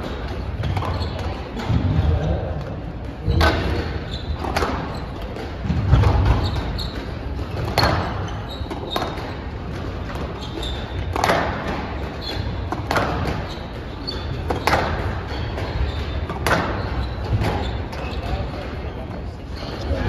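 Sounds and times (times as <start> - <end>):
squash ball hitting walls: 0.0 - 18.9
shoes squeaking on floor: 0.0 - 20.0.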